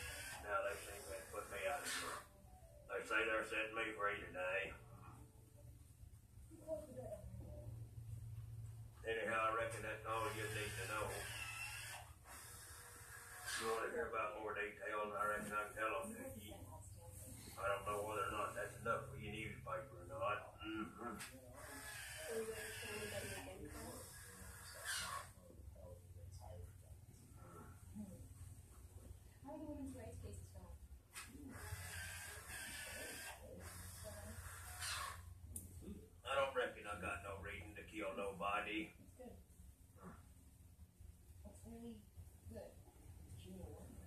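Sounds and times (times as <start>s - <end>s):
faint room noise: 0.0s - 44.0s
steady low hum: 0.0s - 44.0s.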